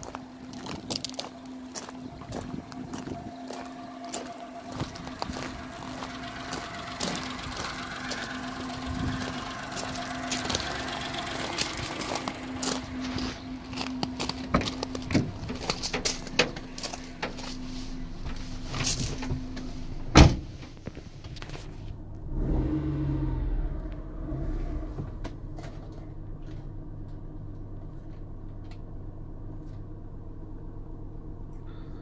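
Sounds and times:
small petrol engine idling: 0:00.0 - 0:20.1, 0:23.4 - 0:32.0.

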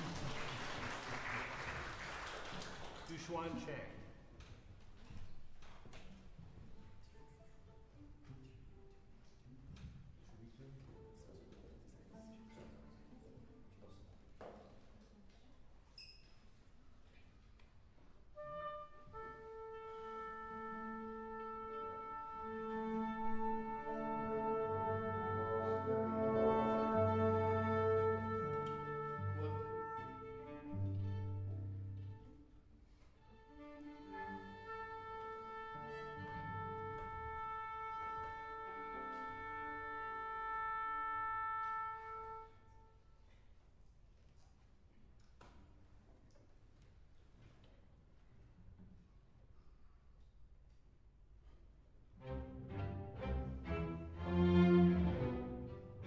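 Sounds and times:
orchestra playing held chords: 0:18.6 - 0:32.3, 0:52.2 - 0:56.0.

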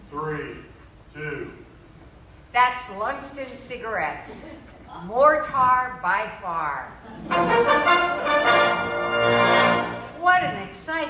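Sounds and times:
brass fanfare: 0:07.3 - 0:10.2.

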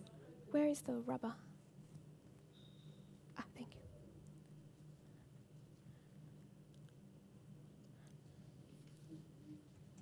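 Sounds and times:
steady low hum: 0:00.0 - 0:10.0.

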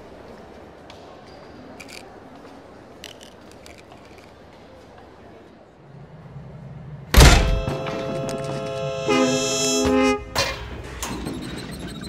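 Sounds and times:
heavy thud: 0:07.1 - 0:08.0.

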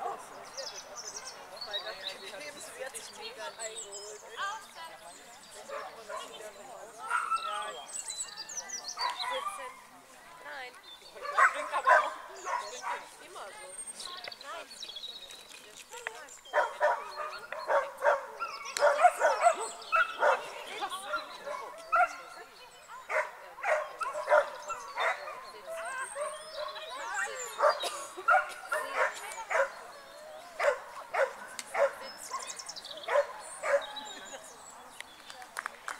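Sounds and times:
dog barking excitedly: 0:16.6 - 0:20.5, 0:33.1 - 0:33.9.

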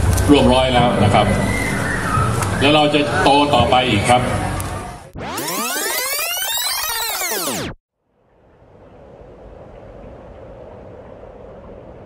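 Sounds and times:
steady background noise: 0:00.0 - 0:12.0.

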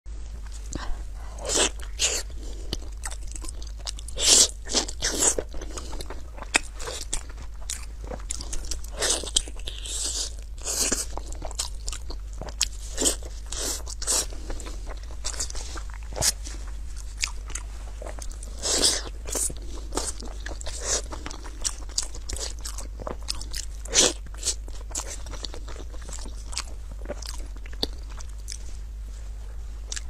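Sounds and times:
steady low hum: 0:00.1 - 0:30.0.

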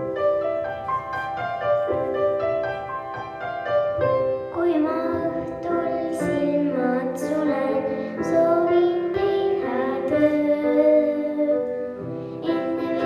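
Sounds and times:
instrumental accompaniment: 0:00.0 - 0:13.0
girl singing into microphone: 0:04.4 - 0:13.0.

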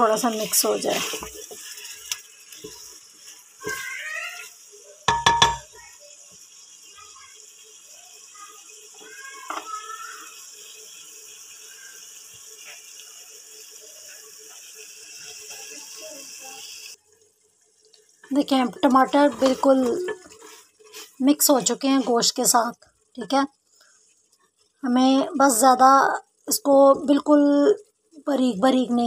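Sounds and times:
meat sizzling in a pot: 0:00.0 - 0:29.0
metal clanking on pot: 0:05.1 - 0:05.7.

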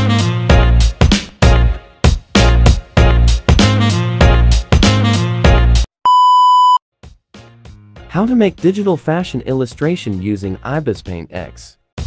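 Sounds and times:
background music with a beat: 0:00.0 - 0:05.9, 0:07.0 - 0:08.7
high electronic beep: 0:06.1 - 0:06.8.

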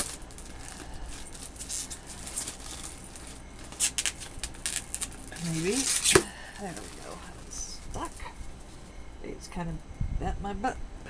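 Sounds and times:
plastic shrink-wrap crinkling: 0:00.0 - 0:08.9.

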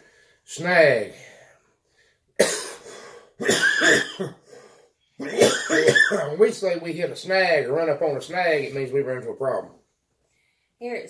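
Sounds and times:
man coughing: 0:02.4 - 0:04.6, 0:05.2 - 0:06.4.

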